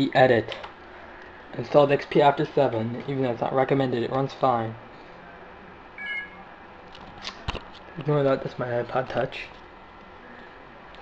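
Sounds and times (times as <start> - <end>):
high electronic chirp: 6.0 - 6.4.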